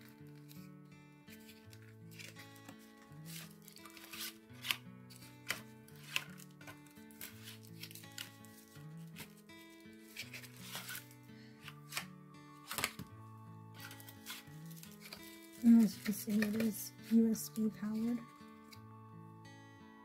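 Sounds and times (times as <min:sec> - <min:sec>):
soft background music: 0:00.0 - 0:20.0
packaging clicking and rustling: 0:01.3 - 0:13.1, 0:13.8 - 0:17.2
person speaking: 0:15.6 - 0:18.4.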